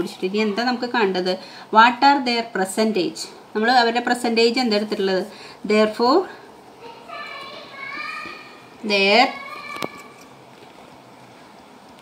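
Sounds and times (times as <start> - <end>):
teacher speaking: 5.9 - 10.2
child's high-pitched vocal sound: 6.8 - 8.7, 9.3 - 10.2.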